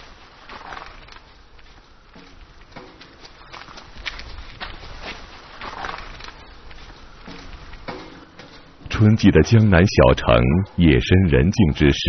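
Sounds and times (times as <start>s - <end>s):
footsteps on hard ground: 0.0s - 8.9s.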